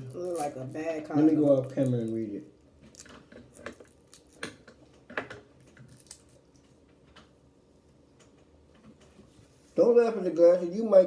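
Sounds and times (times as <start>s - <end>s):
plastic snack packet crinkling: 0.0s - 4.6s.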